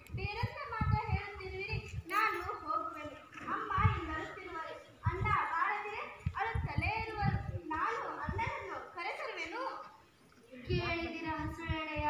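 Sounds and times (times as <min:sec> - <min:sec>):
girl speaking stage dialogue: 0:00.1 - 0:12.0.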